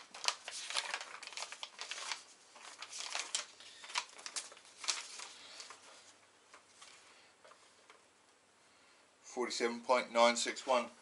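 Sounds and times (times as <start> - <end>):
rustling and crinkling: 0.0 - 8.1.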